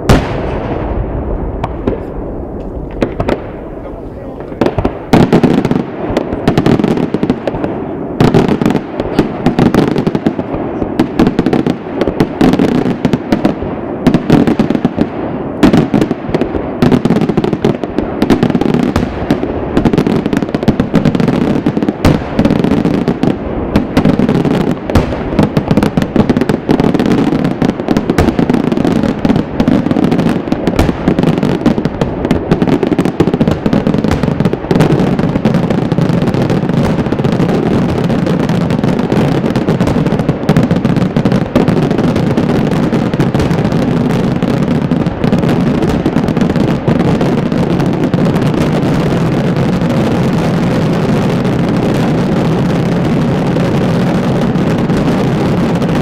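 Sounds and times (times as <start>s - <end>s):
fireworks bangs and crackling: 0.0s - 56.0s.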